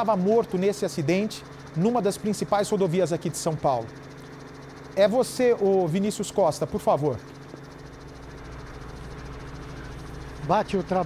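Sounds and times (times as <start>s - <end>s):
insects chirping: 0.0s - 11.0s
low hum: 0.0s - 11.0s.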